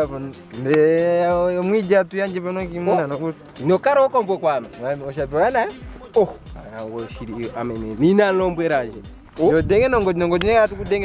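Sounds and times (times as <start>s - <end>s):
crickets droning: 0.0s - 11.0s
men talking: 0.0s - 11.0s.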